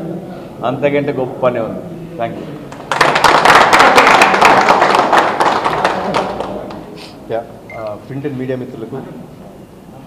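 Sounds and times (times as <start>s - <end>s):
small group applauding: 2.7s - 7.0s.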